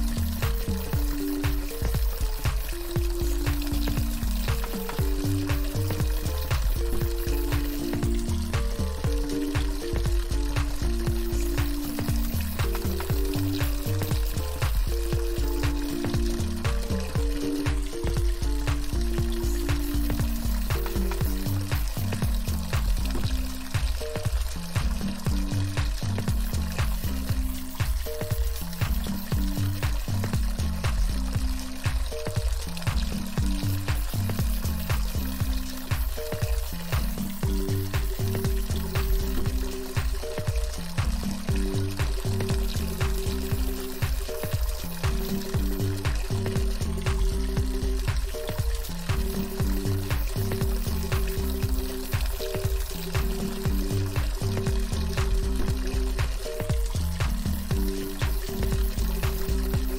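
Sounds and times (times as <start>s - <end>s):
rushing stream water: 0.0s - 59.9s
soft ambient music: 0.0s - 59.9s.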